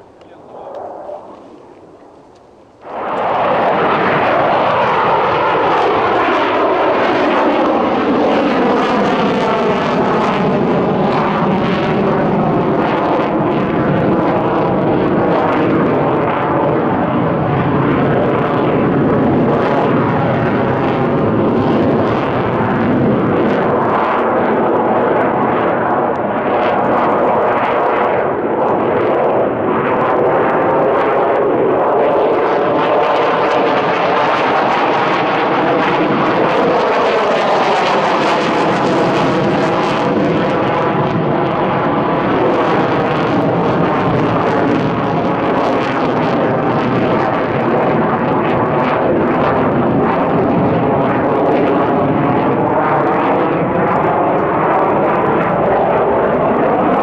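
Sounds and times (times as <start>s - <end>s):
jet engines roaring: 0.0s - 57.0s.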